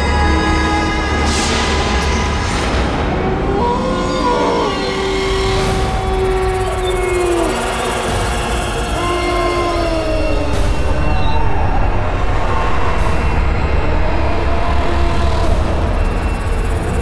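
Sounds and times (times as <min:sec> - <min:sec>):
low rumbling drone: 0:05.2 - 0:17.0
sudden whooshes: 0:10.0 - 0:17.0.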